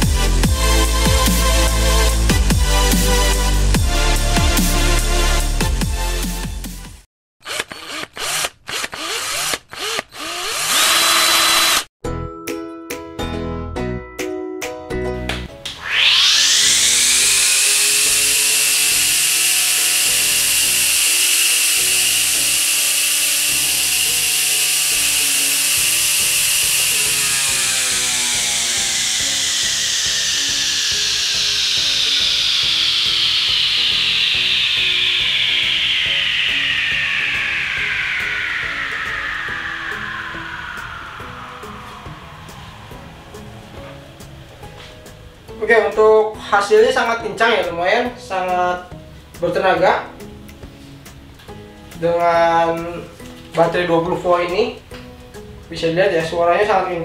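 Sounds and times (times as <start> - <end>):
grass trimmer motor whine: 7.4 - 11.9, 15.8 - 44.2.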